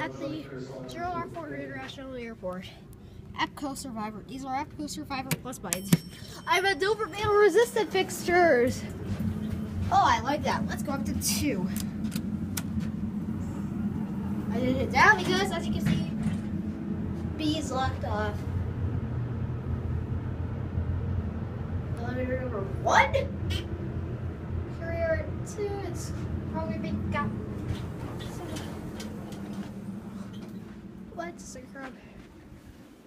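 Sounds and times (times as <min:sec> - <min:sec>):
elevator cab low hum: 0:00.0 - 0:33.0.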